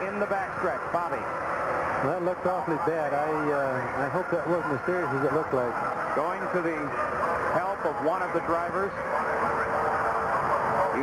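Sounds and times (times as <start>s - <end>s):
race car engines: 0.0s - 11.0s.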